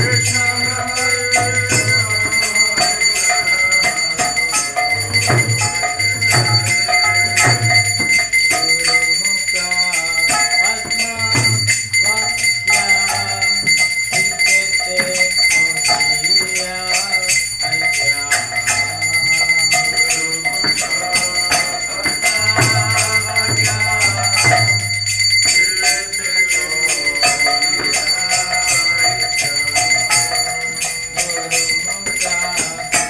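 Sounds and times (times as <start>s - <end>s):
drum beat: 0.0s - 33.0s
small hand bell ringing: 0.0s - 33.0s.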